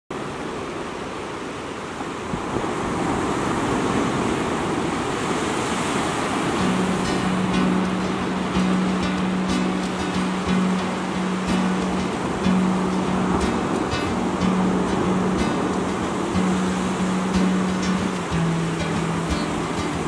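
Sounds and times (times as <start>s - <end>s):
ocean waves breaking: 0.2s - 20.0s.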